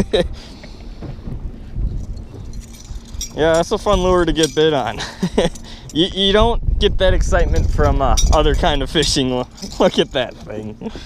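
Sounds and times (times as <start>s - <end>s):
person laughing: 0.0s - 0.8s, 4.9s - 5.8s, 10.7s - 11.0s
wind buffeting microphone: 0.0s - 11.0s.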